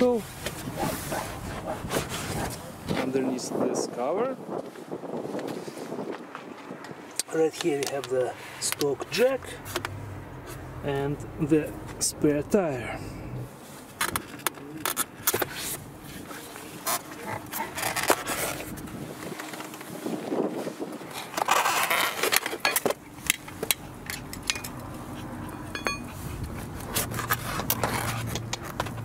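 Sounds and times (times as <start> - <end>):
foam and plastic scraping: 13.9 - 23.0
metal tools clicking and knocking: 22.4 - 24.9, 25.5 - 26.2.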